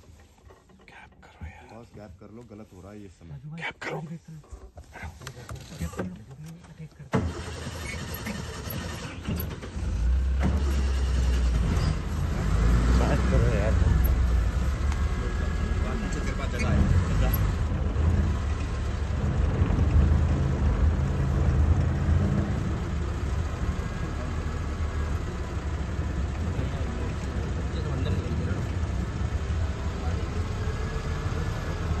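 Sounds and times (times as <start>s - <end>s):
vehicle engine starting and running: 4.4s - 32.0s.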